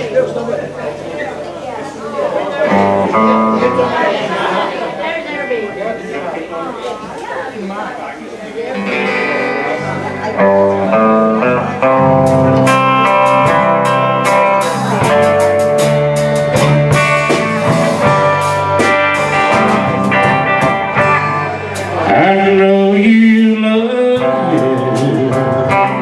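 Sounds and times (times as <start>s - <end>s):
live country band playing: 0.0s - 7.4s, 8.4s - 26.0s.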